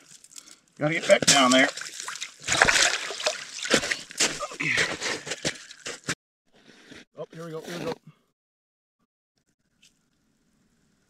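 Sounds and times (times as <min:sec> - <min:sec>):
water splashing and dripping: 0:00.0 - 0:06.0.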